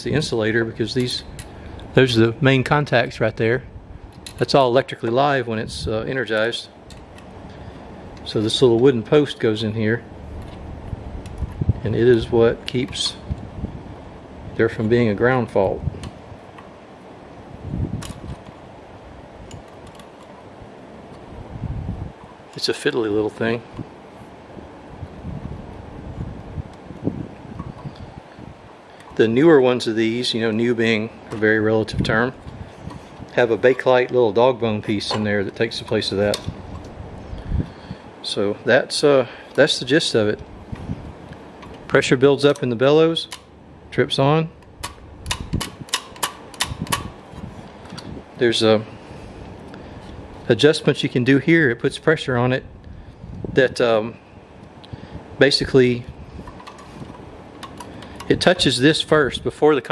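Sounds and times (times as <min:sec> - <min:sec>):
handling noise: 0:10.1 - 0:15.0, 0:15.9 - 0:22.7, 0:23.7 - 0:37.3, 0:40.4 - 0:43.6, 0:56.1 - 0:58.8
small metal clicks: 0:44.6 - 0:47.1, 0:56.4 - 0:58.5.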